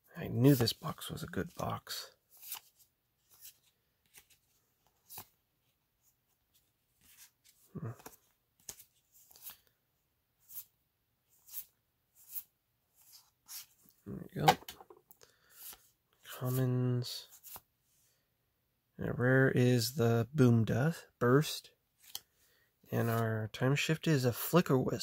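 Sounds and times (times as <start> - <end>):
cards swishing through hands: 0.4 - 5.4, 7.0 - 9.7, 11.3 - 14.6.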